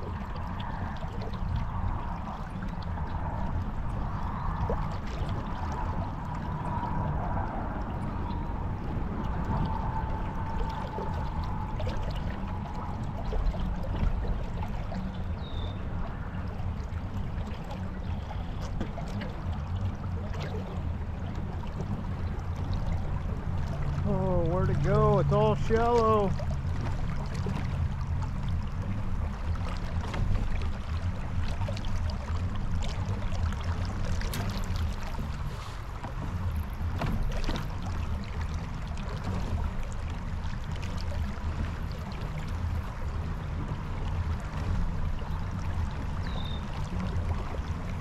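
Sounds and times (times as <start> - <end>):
low steady rumble: 0.0 - 48.0
water splashing along a hull: 0.0 - 48.0.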